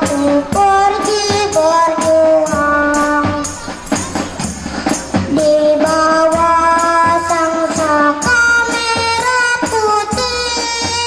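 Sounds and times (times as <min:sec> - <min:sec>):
children singing: 0:00.0 - 0:11.0.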